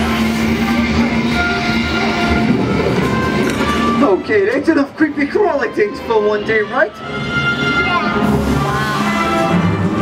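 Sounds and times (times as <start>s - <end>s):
steady low rumble: 0.0s - 6.1s.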